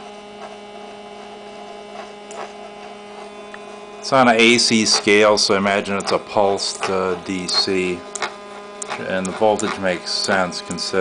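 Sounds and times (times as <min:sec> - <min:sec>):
electric motor hum: 0:00.0 - 0:11.0.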